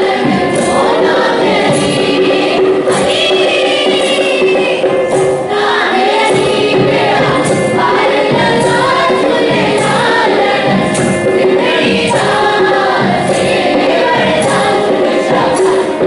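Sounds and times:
children's chorus singing: 0.0s - 16.0s
drums: 0.0s - 16.0s.

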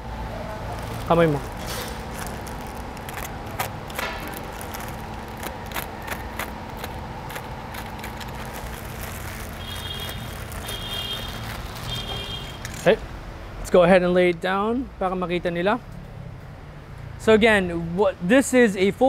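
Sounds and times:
workshop hum: 0.0s - 13.6s
plastic wrapping rustling: 0.3s - 12.9s.

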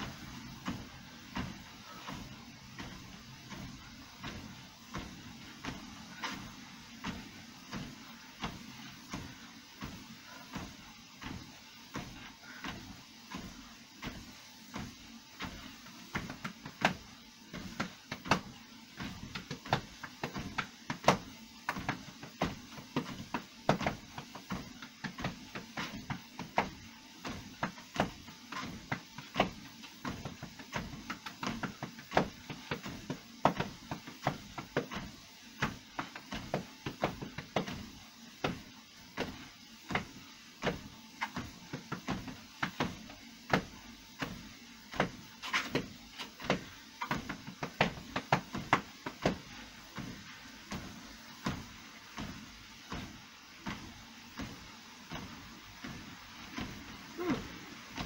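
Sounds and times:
footsteps on treadmill belt: 0.0s - 58.0s
treadmill motor hum: 0.0s - 58.0s.

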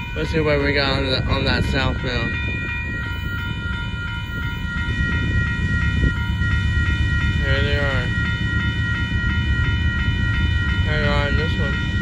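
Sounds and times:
low rumble of freight train: 0.0s - 12.0s
railroad crossing bell ringing: 0.0s - 12.0s.

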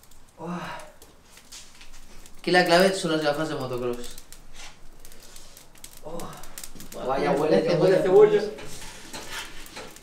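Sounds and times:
fire crackling: 0.0s - 10.0s.

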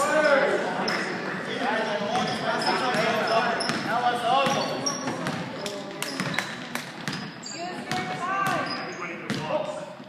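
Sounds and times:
sneaker squeaks: 1.9s - 10.0s.

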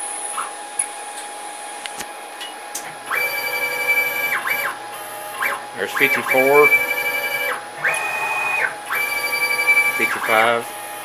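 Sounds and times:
steady high whine: 0.0s - 11.0s
stepper motors singing: 3.1s - 11.0s.

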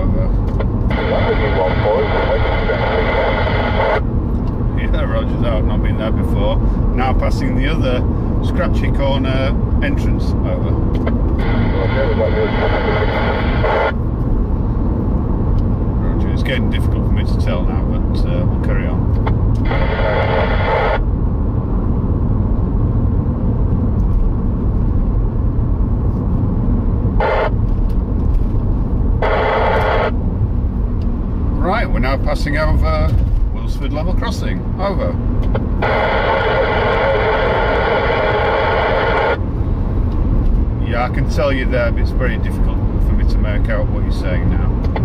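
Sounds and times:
noisy radio speech: 0.0s - 4.1s, 4.7s - 14.0s, 16.0s - 21.0s, 27.2s - 27.6s, 29.1s - 30.2s, 31.5s - 39.5s, 40.8s - 45.0s
car road and engine noise: 0.0s - 45.0s.

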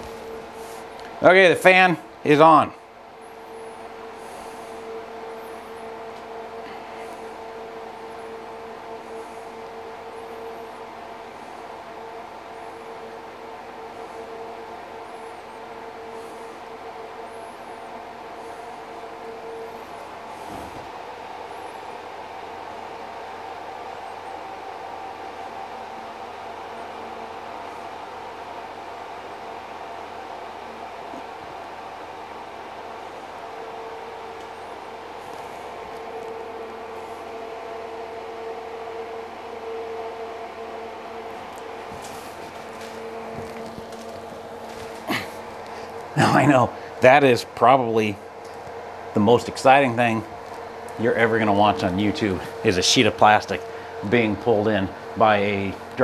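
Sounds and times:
exhaust fan humming: 0.0s - 56.0s.

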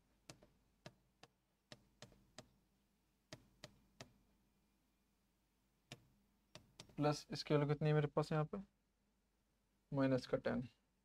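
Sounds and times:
stylus tapping touchscreen: 0.2s - 2.6s, 3.2s - 4.3s, 5.8s - 7.0s.

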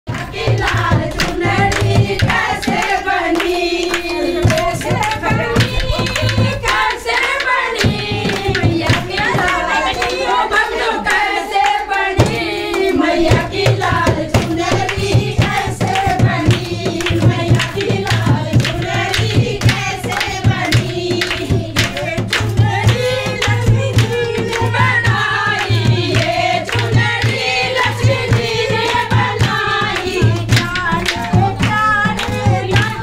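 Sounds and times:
drum beat: 0.1s - 33.0s
hand-clapping: 0.1s - 33.0s
women singing in unison: 0.1s - 33.0s.

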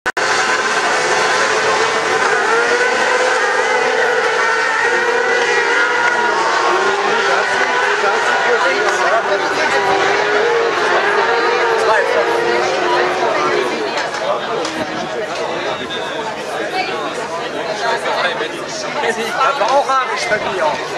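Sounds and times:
racing engines at high revs: 0.1s - 20.9s.

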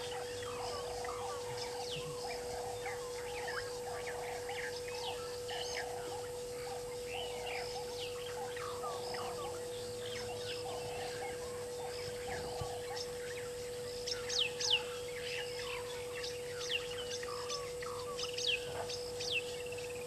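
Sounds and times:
birds whistled calls: 0.0s - 20.0s
softer lower bird calls: 0.0s - 20.0s
steady hum: 0.0s - 20.0s.

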